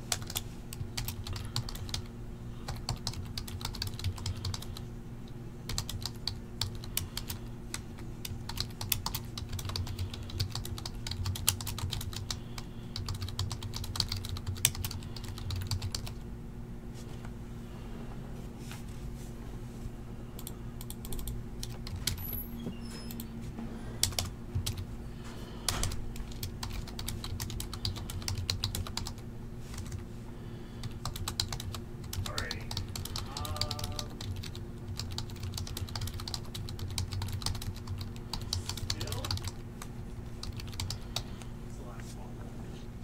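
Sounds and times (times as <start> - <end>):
low electrical hum: 0.0 - 43.0
typing on a computer keyboard: 0.1 - 4.8, 5.7 - 16.2, 20.4 - 22.3, 24.0 - 24.8, 25.7 - 30.0, 30.8 - 39.6, 40.4 - 41.3.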